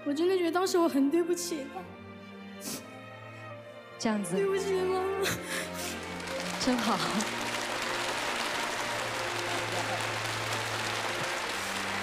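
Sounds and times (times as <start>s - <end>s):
soft background music: 0.0s - 12.0s
audience applauding: 5.8s - 12.0s.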